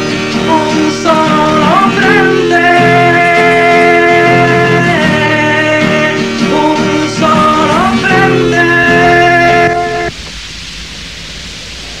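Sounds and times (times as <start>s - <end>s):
held music chord: 0.0s - 10.1s
analogue recording hiss: 0.0s - 12.0s.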